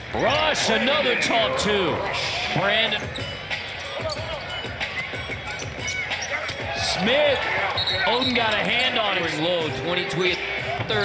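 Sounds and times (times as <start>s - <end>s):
arena music: 0.0s - 11.0s
crowd noise: 0.0s - 11.0s.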